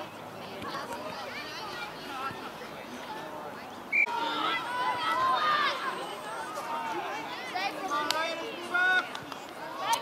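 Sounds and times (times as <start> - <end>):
voices calling out and chattering: 0.0 - 10.0.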